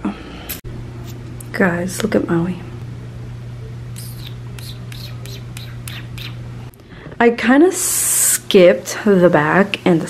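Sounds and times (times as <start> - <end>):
steady low hum: 0.0 - 9.8.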